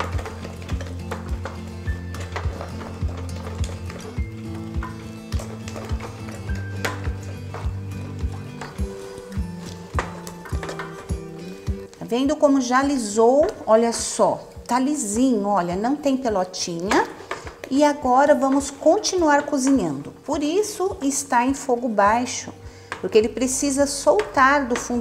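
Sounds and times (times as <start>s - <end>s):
music with clicking beat: 0.0s - 12.1s.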